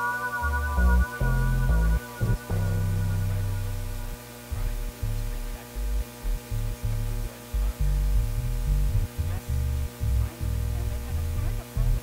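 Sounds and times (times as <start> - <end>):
low synthesizer bass notes: 0.0 - 12.0
steady electrical hum: 0.0 - 12.0.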